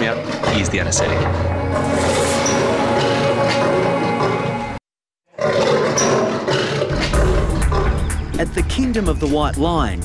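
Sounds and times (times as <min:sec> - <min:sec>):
lioness snarling: 0:05.4 - 0:08.0.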